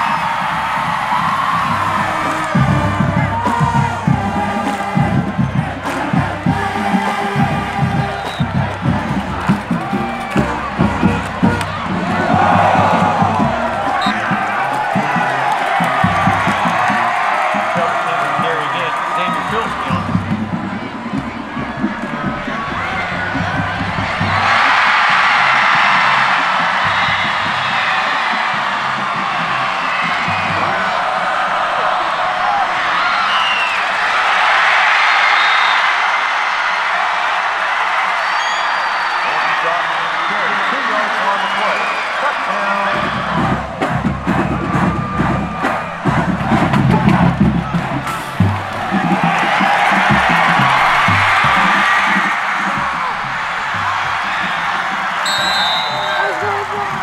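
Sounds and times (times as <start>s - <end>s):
stadium crowd cheering: 0.0s - 57.0s
background music: 0.1s - 31.7s.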